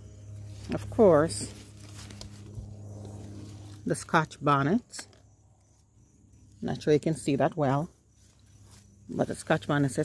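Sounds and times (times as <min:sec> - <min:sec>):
lawnmower engine humming: 0:00.0 - 0:10.0.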